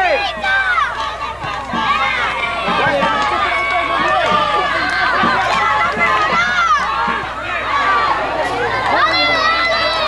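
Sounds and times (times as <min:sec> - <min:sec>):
high-pitched voices shouting: 0:00.0 - 0:10.0.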